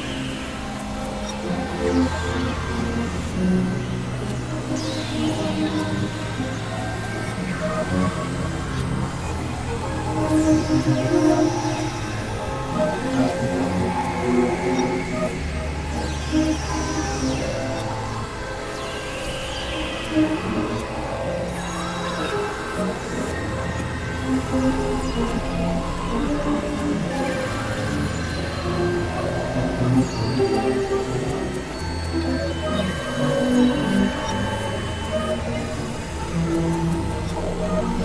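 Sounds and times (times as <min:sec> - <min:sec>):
synthesizer drones: 0:00.0 - 0:38.0.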